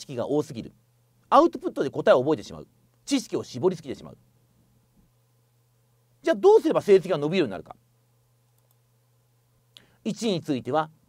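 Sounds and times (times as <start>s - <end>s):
faint low hum: 0.0s - 11.0s
faint click: 8.5s - 8.8s.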